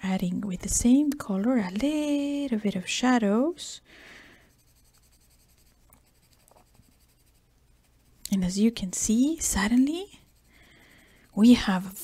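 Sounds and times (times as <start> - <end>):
pencil scratching on paper: 4.4 - 12.0.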